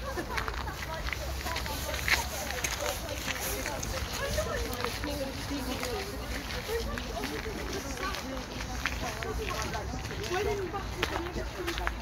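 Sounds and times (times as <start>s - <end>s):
overlapping chatter of voices: 0.0s - 12.0s.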